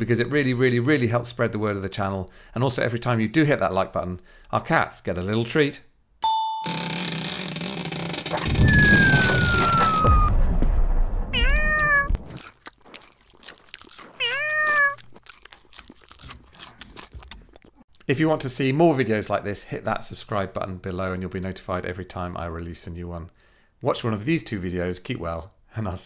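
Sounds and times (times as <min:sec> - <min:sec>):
cat meowing: 0:11.3 - 0:12.3, 0:14.2 - 0:15.0
cat crunching dry treats: 0:12.3 - 0:18.1.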